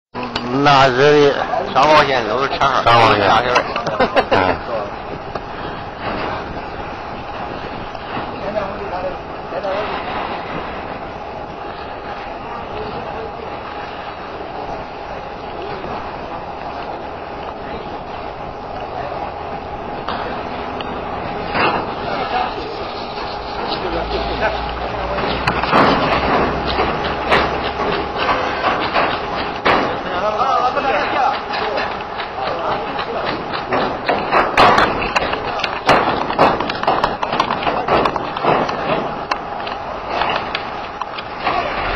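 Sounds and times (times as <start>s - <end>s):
outdoor background noise: 0.1s - 41.9s
indistinct voices: 0.2s - 41.9s.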